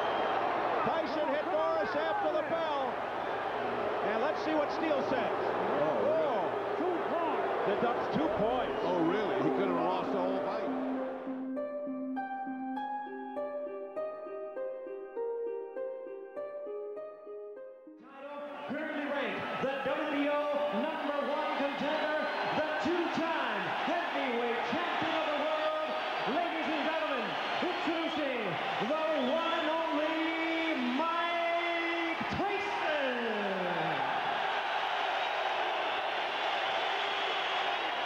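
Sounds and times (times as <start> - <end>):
crowd cheering: 0.0 - 11.3, 18.2 - 38.0
announcer calling over loudspeaker: 0.8 - 2.9, 7.1 - 11.0, 18.1 - 33.9.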